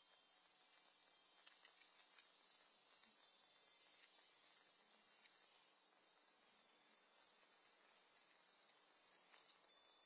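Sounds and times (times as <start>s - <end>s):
faint outdoor hiss: 0.0s - 10.0s
soft ticks: 0.0s - 10.0s.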